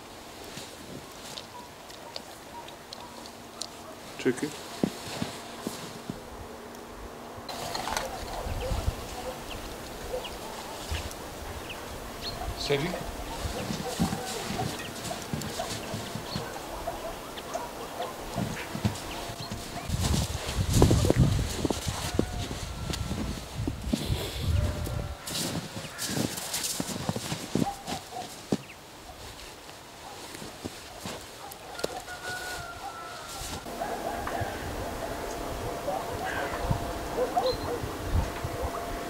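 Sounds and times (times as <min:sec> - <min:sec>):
footsteps crunching in deep snow: 0:00.0 - 0:01.7, 0:03.0 - 0:06.4, 0:07.5 - 0:34.6.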